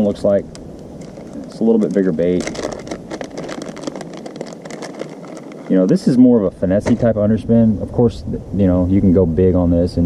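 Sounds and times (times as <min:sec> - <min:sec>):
plastic package crinkling: 0:00.4 - 0:06.2.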